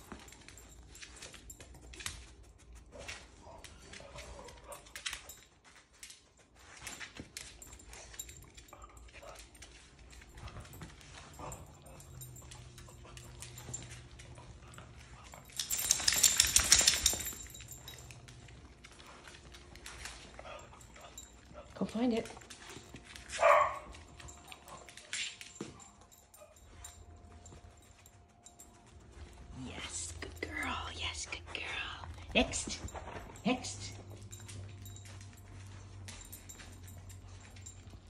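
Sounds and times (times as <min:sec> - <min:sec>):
dog claws clicking on floor: 0:00.0 - 0:31.6.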